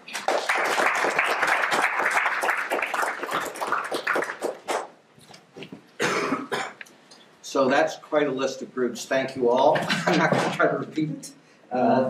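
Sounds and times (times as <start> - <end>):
audience applause: 0.0 - 4.9
short cough: 6.0 - 6.8.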